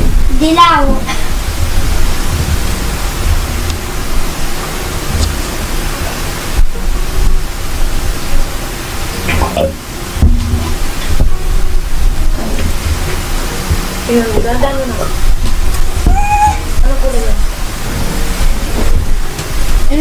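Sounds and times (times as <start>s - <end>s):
loud steady hiss: 0.0s - 20.0s.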